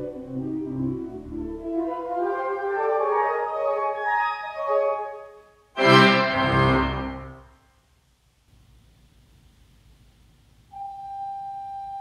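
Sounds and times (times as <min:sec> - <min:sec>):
faint low room noise: 0:00.0 - 0:12.0
pipe organ sustained high note: 0:05.8 - 0:07.5.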